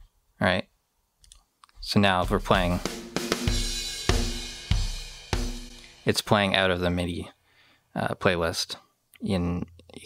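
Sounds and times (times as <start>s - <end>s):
drum hits: 2.2s - 6.2s
cymbal and hi-hat wash: 2.4s - 6.4s.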